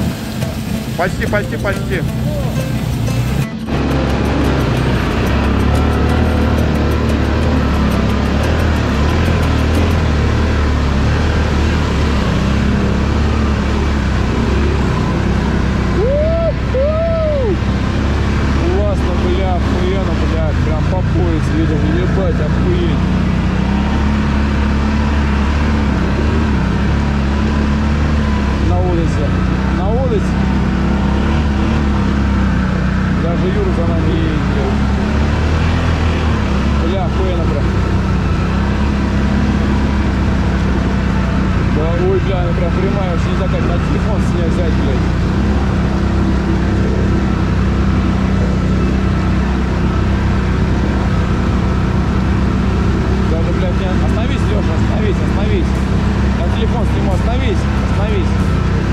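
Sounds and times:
quad bike engine running: 0.0s - 58.9s.

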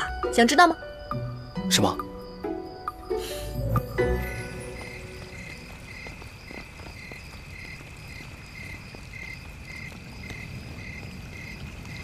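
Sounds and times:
insects chirping: 0.0s - 12.0s
steady high insect trill: 0.0s - 12.0s.

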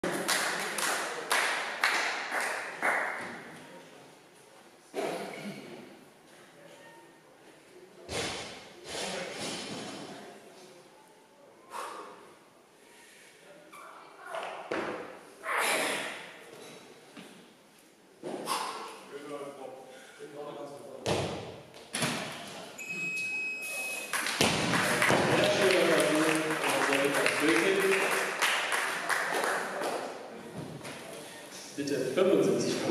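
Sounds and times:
audience clapping rhythmically: 0.0s - 3.2s, 24.0s - 30.2s
high electronic beep: 22.8s - 24.1s.

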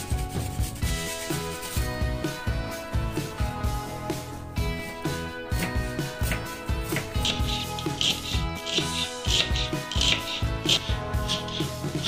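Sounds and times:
background music: 0.0s - 12.0s
knife chopping on cutting board: 5.6s - 11.7s.

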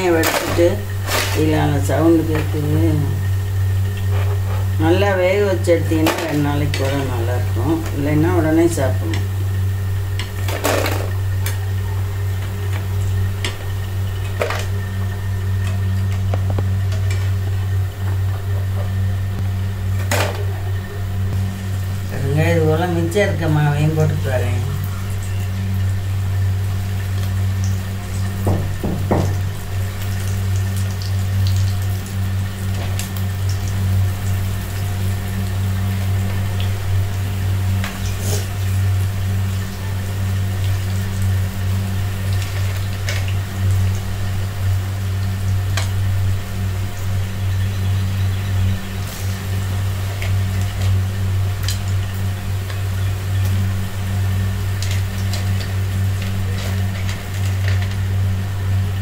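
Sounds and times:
batter sizzling in hot oil: 0.0s - 59.0s
low motor hum: 0.0s - 59.0s.

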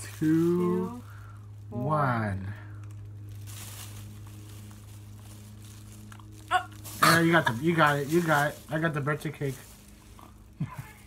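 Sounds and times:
plastic bag crinkling: 0.0s - 1.9s, 2.7s - 11.0s
steady low hum: 0.0s - 11.0s.

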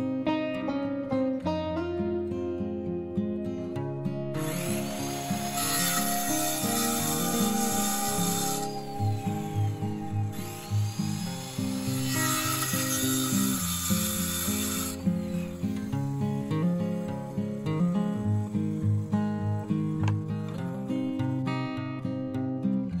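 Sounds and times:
acoustic guitar music: 0.0s - 23.0s
circular saw cutting wood: 4.3s - 20.0s.

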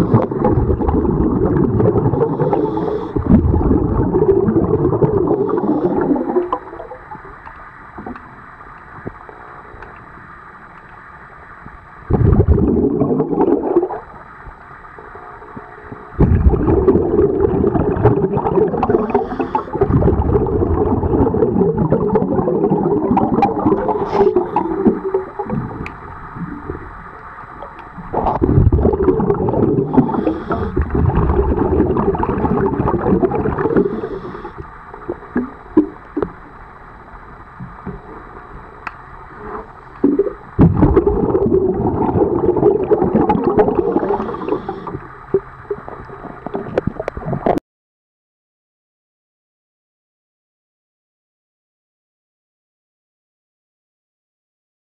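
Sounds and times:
underwater exhaust bubbles: 0.0s - 47.6s.

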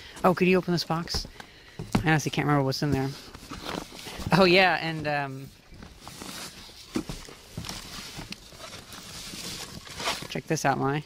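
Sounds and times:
rustling of canvas bag: 0.0s - 10.6s
bubble wrap rustling: 3.0s - 10.6s.

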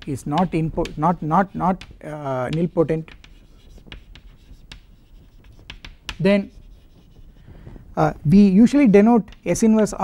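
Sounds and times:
chalk tapping and scratching: 0.0s - 10.0s.

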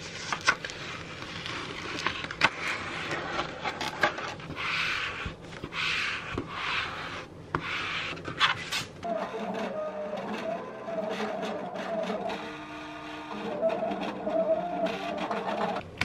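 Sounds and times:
paper trimmer scraping: 2.7s - 16.0s
cutting machine motors whining: 9.0s - 15.9s.

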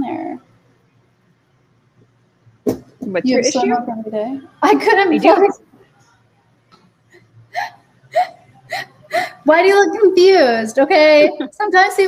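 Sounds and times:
woman laughing breathily: 7.6s - 9.4s.

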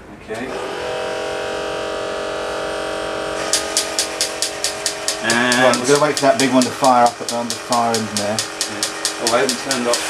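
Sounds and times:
toy robot clicking: 3.4s - 10.0s
toy robot whirring: 3.4s - 10.0s.

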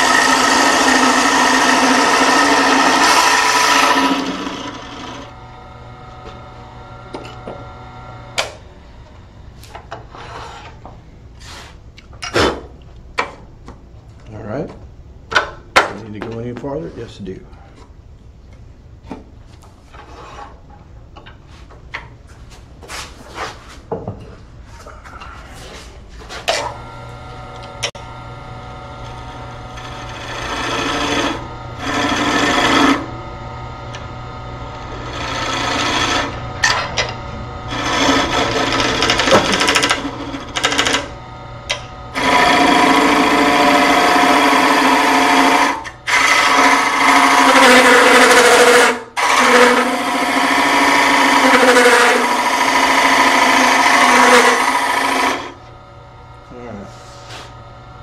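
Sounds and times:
gouge cutting spinning wood: 0.0s - 8.6s, 26.5s - 56.0s
lathe hum: 0.0s - 10.9s, 25.6s - 58.0s.

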